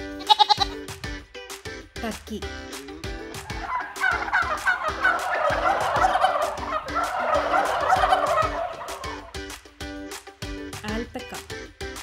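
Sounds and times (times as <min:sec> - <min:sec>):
turkeys gobbling: 0:03.1 - 0:09.4.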